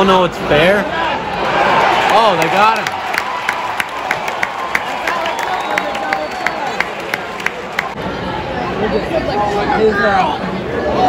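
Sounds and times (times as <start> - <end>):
crowd clapping and cheering: 1.3 - 8.0.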